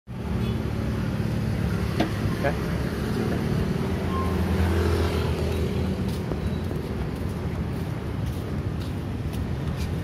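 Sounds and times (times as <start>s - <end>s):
vehicle engine rumble: 0.1s - 10.0s.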